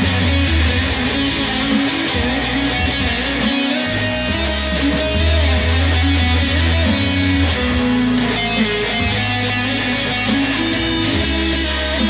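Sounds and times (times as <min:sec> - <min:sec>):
electric guitar melody: 0:00.0 - 0:12.0
low bass line: 0:00.0 - 0:12.0.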